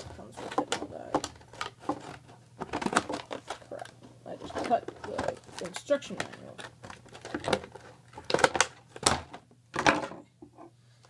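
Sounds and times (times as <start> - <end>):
plastic packaging crinkling: 0.0 - 9.4.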